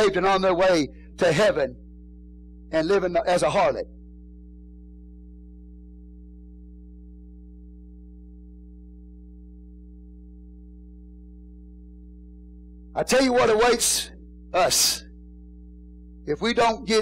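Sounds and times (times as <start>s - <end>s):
mains hum: 0.0s - 17.0s.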